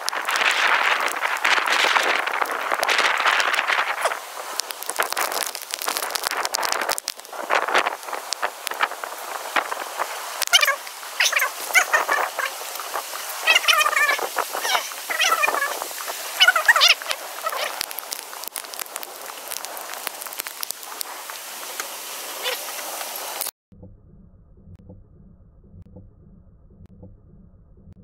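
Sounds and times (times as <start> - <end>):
thunder crackling: 0.0 - 23.5
warbling animal calls: 0.1 - 21.0, 22.2 - 22.9.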